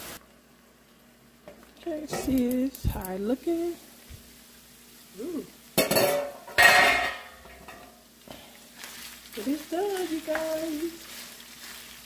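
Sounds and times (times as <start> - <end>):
meat sizzling in frying pan: 0.0 - 12.0.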